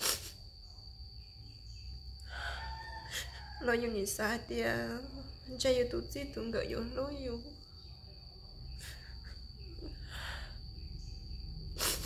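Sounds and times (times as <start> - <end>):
woman sniffling: 0.0 - 0.4, 8.8 - 10.6, 11.8 - 12.0
crickets chirring: 0.0 - 12.0.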